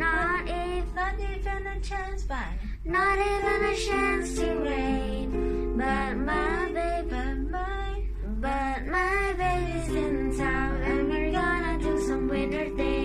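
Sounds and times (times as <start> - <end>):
girl singing: 0.0 - 13.0
backing track of sustained chords: 2.9 - 13.0.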